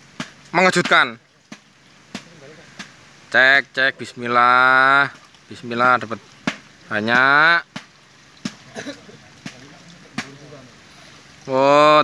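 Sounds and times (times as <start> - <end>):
water splashing from net: 0.0 - 3.4, 4.2 - 12.0.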